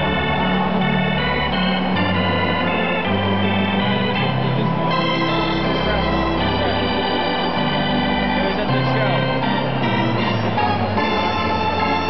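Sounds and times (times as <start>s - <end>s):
stadium organ playing chords: 0.0s - 12.0s.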